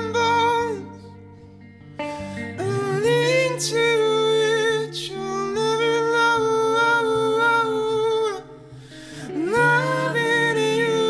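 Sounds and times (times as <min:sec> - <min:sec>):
voices humming in harmony: 0:09.2 - 0:11.0.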